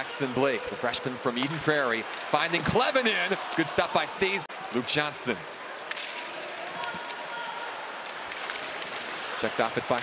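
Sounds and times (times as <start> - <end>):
hockey sticks and puck clicking: 0.6 - 2.8, 5.8 - 10.0.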